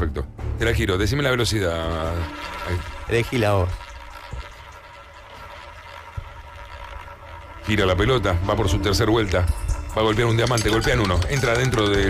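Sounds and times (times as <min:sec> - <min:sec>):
roulette ball rolling: 0:02.3 - 0:12.0.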